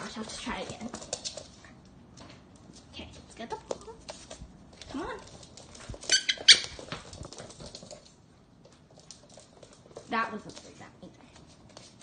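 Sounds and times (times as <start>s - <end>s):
dog claws tapping on wood floor: 0.0s - 12.0s.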